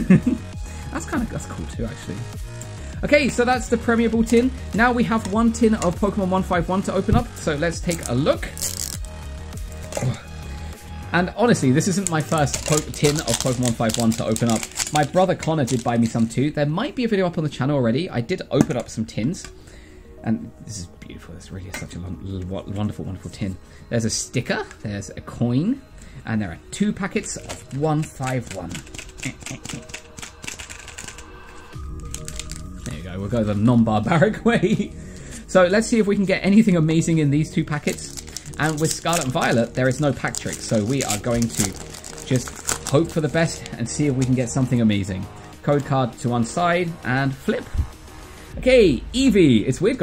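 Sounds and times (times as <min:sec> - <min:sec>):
background music with low bass: 0:00.0 - 0:50.0
plastic shrink wrap crinkling: 0:07.8 - 0:09.1, 0:11.8 - 0:16.2, 0:27.2 - 0:33.0, 0:37.8 - 0:43.8.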